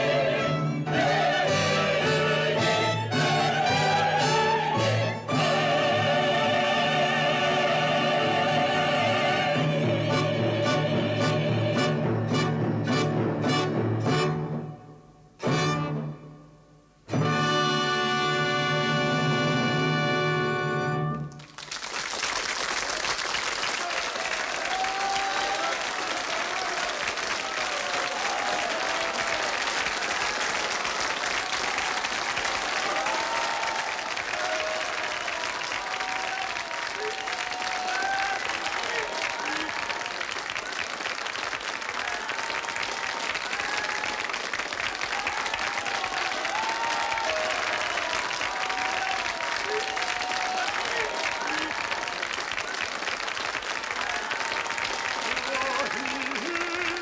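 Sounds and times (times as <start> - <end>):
audience applauding: 21.2 - 57.0
voices calling out and cheering: 23.7 - 29.7, 31.4 - 40.4, 41.8 - 52.8, 53.8 - 57.0.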